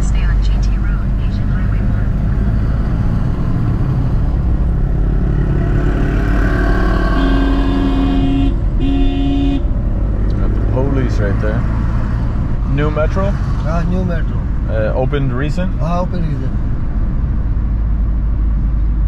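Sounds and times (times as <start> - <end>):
car engine and road rumble: 0.0 - 19.0
vehicle horn honking: 6.8 - 9.7.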